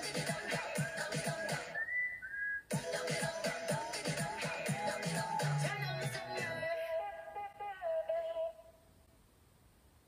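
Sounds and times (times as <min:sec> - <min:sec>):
pop song beat and bass: 0:00.0 - 0:02.1, 0:02.7 - 0:08.3.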